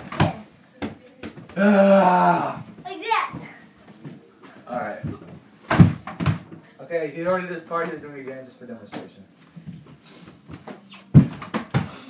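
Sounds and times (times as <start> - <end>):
ball knocking on hoop and door: 5.0 - 6.5.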